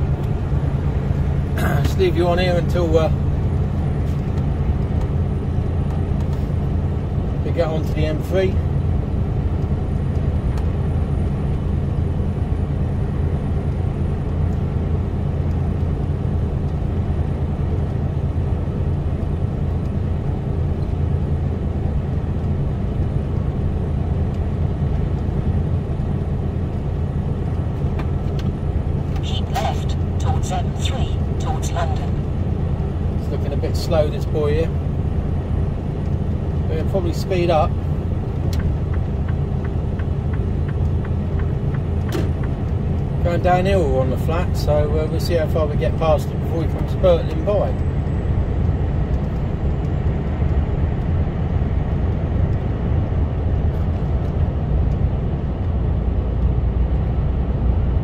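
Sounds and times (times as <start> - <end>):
diesel engine drone: 0.0 - 58.0
road noise: 0.0 - 58.0.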